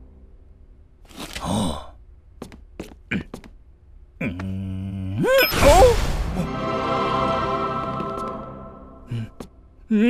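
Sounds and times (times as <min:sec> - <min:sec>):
cartoon man sighing: 0:09.0 - 0:10.0.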